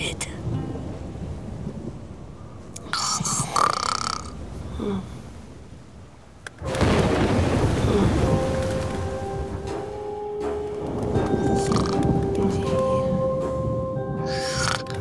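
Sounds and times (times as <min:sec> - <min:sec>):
music with sustained notes: 0:00.0 - 0:02.6, 0:06.6 - 0:15.0
rain: 0:00.0 - 0:15.0
thunder crack: 0:06.6 - 0:15.0.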